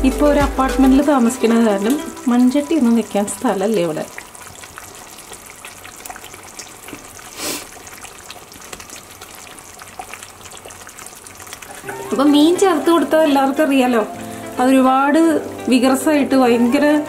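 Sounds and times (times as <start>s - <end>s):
curry bubbling and sizzling: 0.0s - 17.0s
loud hiss: 7.4s - 7.6s.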